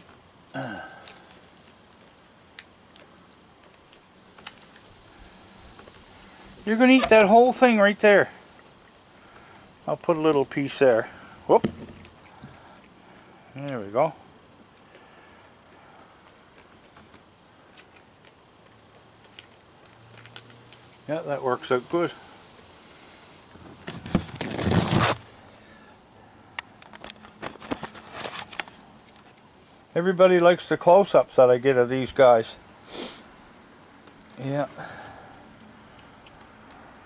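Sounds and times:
animal chewing and crunching: 14.6 - 21.0, 33.4 - 37.0.

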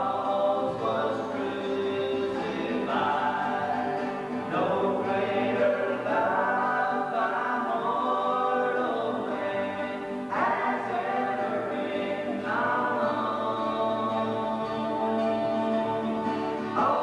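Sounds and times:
acoustic guitars: 0.0 - 17.0
group singing in harmony: 0.0 - 17.0.

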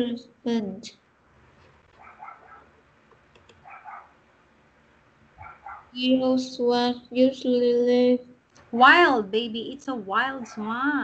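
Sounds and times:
dog barking faintly: 2.0 - 2.7, 3.6 - 4.2, 5.4 - 6.0.

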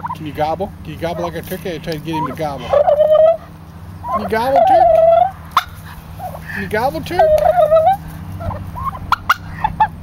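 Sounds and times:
turkeys calling: 0.0 - 10.0.

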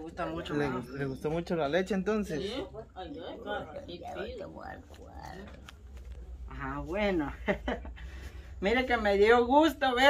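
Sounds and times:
soft frail voices: 2.5 - 7.0.

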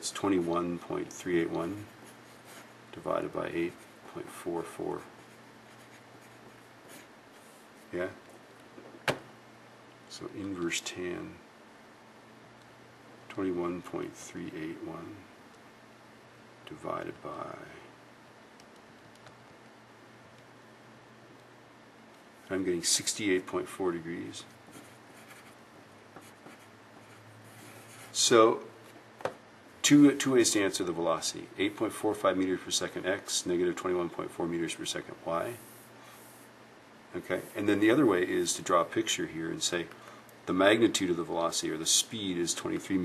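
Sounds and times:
low steady hum: 0.0 - 43.0
pencil scratching on paper: 5.2 - 7.5, 24.7 - 25.6, 26.2 - 28.2.

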